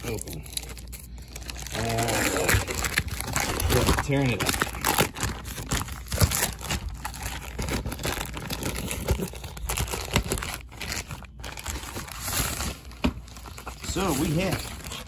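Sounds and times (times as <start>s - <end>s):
packaging bag crinkling: 0.0s - 15.0s.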